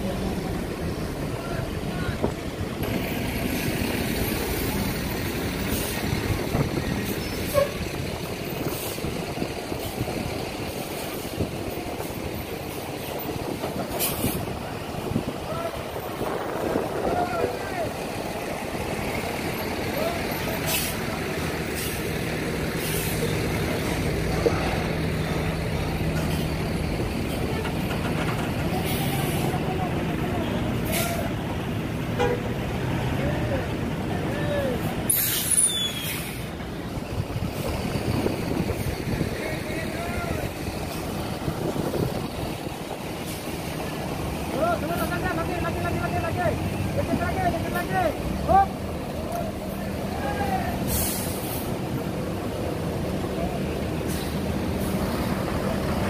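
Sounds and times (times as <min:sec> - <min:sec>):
diesel coach engines rumbling: 0:00.0 - 0:56.0
air brake hisses: 0:13.9 - 0:14.5, 0:20.6 - 0:21.1, 0:22.8 - 0:23.3, 0:30.8 - 0:31.3, 0:35.1 - 0:36.5, 0:50.8 - 0:51.8.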